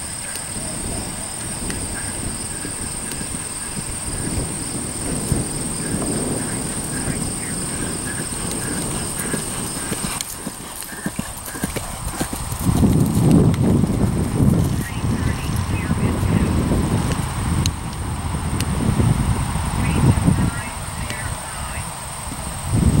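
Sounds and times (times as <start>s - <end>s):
horse hooves cantering on grass: 0.0s - 23.0s.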